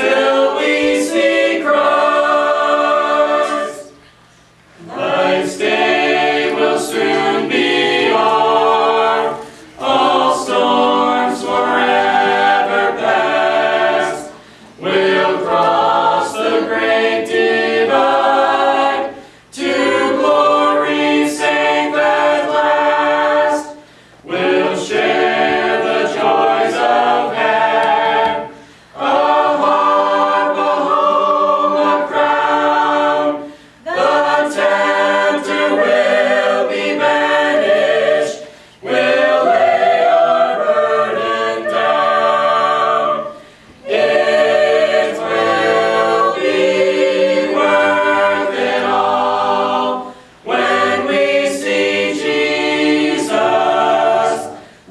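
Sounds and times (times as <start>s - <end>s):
a cappella choir singing a hymn: 0.0s - 54.9s.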